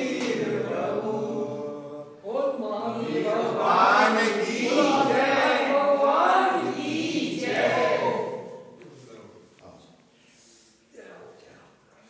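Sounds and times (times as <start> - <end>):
group chanting a mantra: 0.0 - 8.8.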